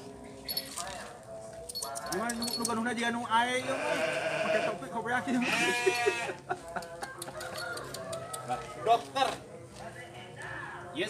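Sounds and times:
rooster crowing: 0:07.1 - 0:09.1.

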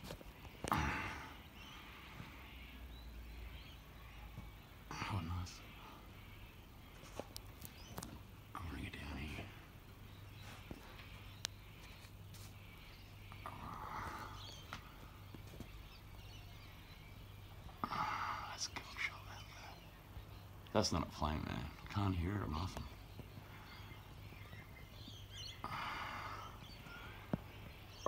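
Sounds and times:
man whispering: 0:04.9 - 0:06.2, 0:08.4 - 0:09.8, 0:18.2 - 0:19.9.

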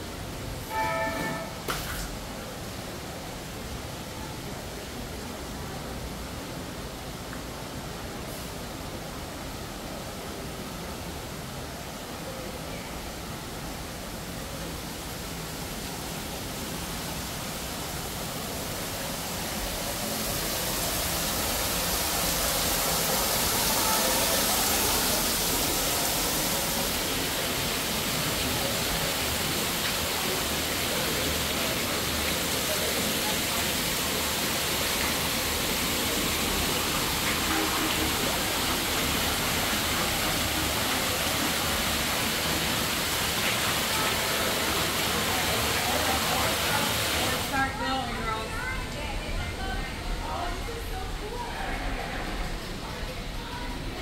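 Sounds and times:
faint voices: 0:00.0 - 0:54.0
fountain water splashing: 0:01.6 - 0:54.0.

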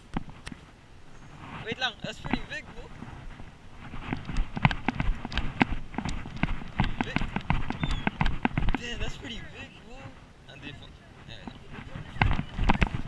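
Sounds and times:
quick footsteps on concrete: 0:02.2 - 0:09.2.

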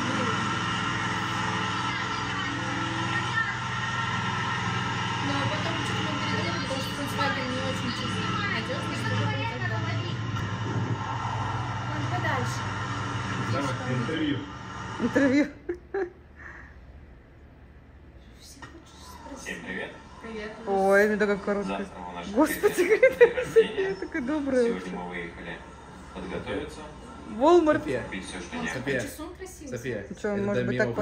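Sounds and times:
indistinct voices talking: 0:00.0 - 0:15.5
steady tonal hum: 0:00.0 - 0:31.0.

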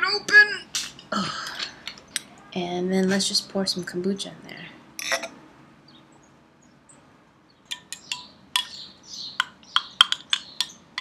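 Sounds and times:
metal spoon clinking in glass: 0:07.7 - 0:08.8.

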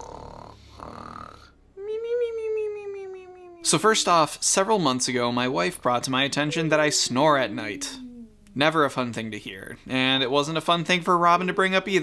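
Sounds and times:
man snoring: 0:00.0 - 0:01.5.

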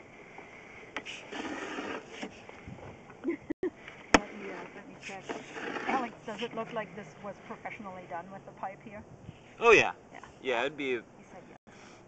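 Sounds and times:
cable scraping in iron pipe: 0:01.0 - 0:02.4, 0:05.0 - 0:06.6.

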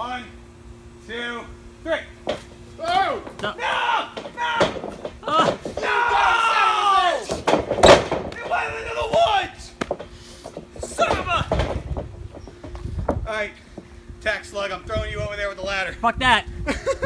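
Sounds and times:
long falling yell: 0:02.8 - 0:07.3
men shouting and laughing: 0:02.8 - 0:07.6.

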